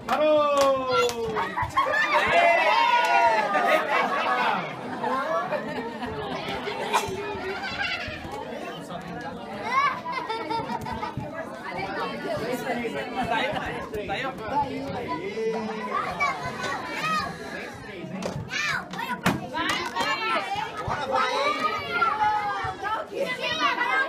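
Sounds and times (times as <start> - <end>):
adults chattering: 0.0 - 24.0
children shouting in play: 18.5 - 24.0.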